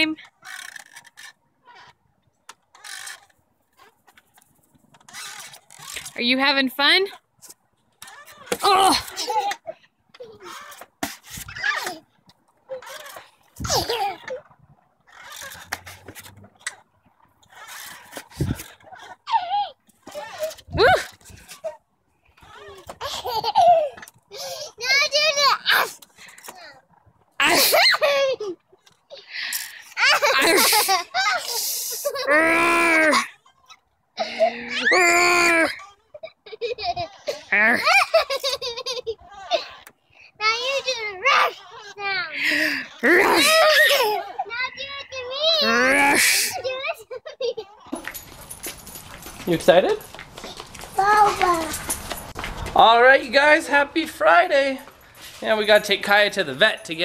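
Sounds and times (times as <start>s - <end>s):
wooden swing set creaking: 0.0s - 57.0s
child's excited squeal: 30.4s - 33.3s, 34.5s - 36.1s.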